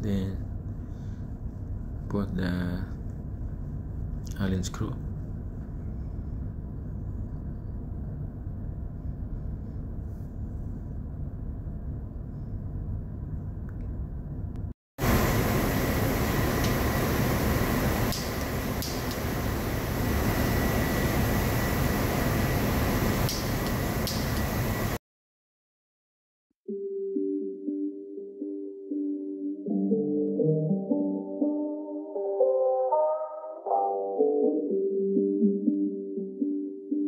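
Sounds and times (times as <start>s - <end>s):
machinery hum and rumble: 0.0s - 25.0s
thin steady whine: 15.0s - 25.0s.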